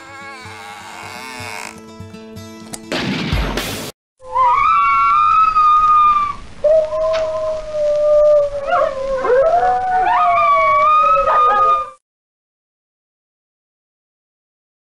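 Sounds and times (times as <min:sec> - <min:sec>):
wild canines howling: 0:04.2 - 0:12.0.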